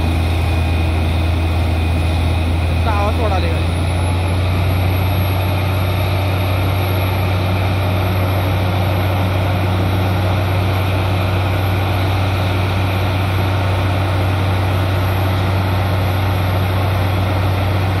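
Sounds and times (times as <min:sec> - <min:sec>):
drilling rig and compressor droning: 0:00.0 - 0:18.0.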